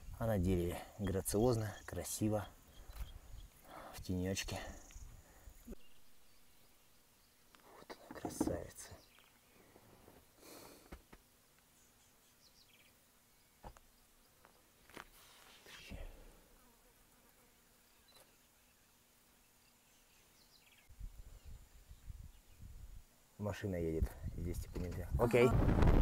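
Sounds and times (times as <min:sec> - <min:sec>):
open-air ambience: 0:00.0 - 0:26.0.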